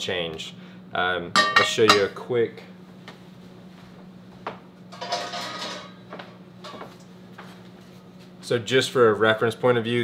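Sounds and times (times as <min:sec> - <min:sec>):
faint steady hum: 0:00.0 - 0:10.0
metal cookware knocking: 0:01.4 - 0:02.2, 0:05.0 - 0:06.0
cookware clattering: 0:04.9 - 0:06.0.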